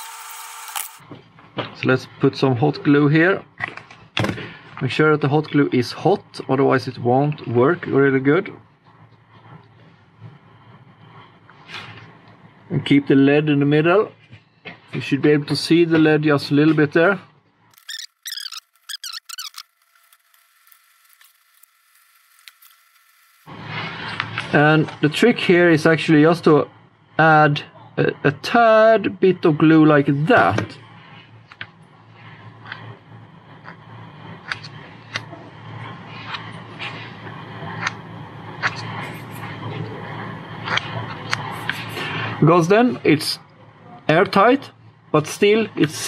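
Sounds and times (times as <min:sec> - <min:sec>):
steady low hum: 0:00.0 - 0:17.8, 0:19.8 - 0:46.0
thin steady whine: 0:00.0 - 0:46.0
wavering high-pitched squeaks: 0:17.7 - 0:23.5.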